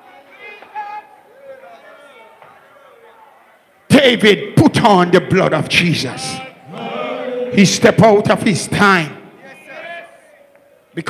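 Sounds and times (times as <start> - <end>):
man preaching over loudspeaker: 3.9 - 6.7, 7.4 - 10.2.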